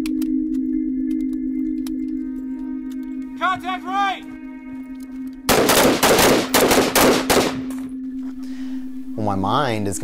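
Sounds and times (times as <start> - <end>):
carbines firing rapidly: 5.5 - 7.7.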